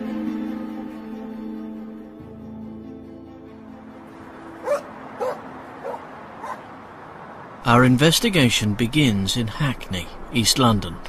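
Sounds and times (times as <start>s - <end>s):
soft sustained music: 0.0s - 6.4s
dog barking: 4.6s - 6.7s.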